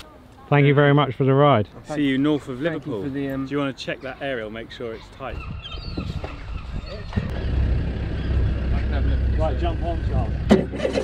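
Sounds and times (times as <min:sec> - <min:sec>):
voices: 0:00.0 - 0:10.5
vehicle engine rumbling: 0:05.9 - 0:11.0.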